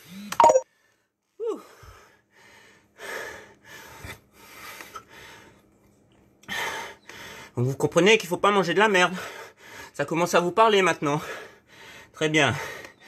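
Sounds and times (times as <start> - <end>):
man breathing hard: 0.7 - 5.7, 6.4 - 7.6, 9.1 - 10.0, 11.2 - 13.0.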